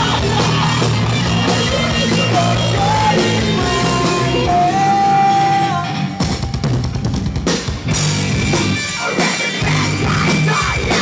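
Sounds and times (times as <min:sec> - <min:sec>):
heavy rock band playing: 0:00.0 - 0:11.0.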